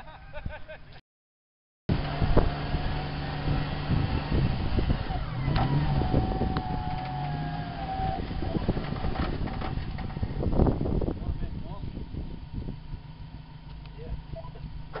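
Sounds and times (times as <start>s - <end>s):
engine running under load: 1.9s - 15.0s
winch whine: 1.9s - 15.0s.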